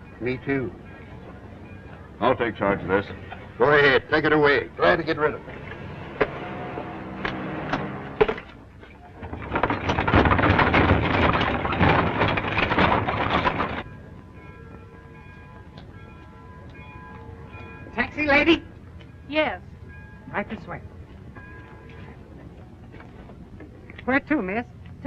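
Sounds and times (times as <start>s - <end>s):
faint steady background tones: 0.0s - 25.0s
train rushing and clattering: 0.0s - 25.0s.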